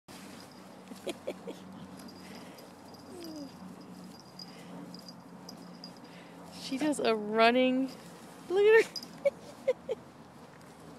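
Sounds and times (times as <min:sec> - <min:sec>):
steady low hum: 0:00.1 - 0:10.9
dog whining: 0:03.1 - 0:03.6.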